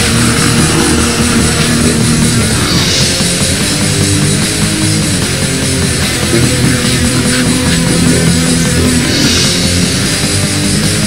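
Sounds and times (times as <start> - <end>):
heavy metal band: 0.0 - 11.0.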